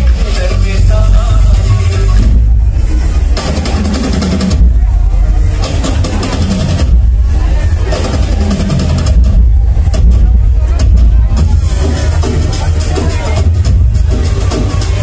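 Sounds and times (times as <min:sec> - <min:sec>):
dance remix with heavy bass: 0:00.0 - 0:15.0.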